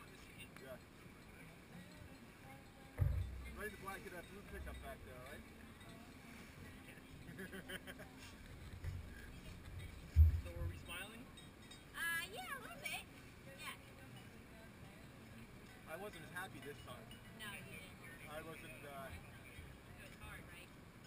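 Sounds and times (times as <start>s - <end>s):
distant voices talking: 0.0s - 21.0s
low thump: 3.0s - 3.6s.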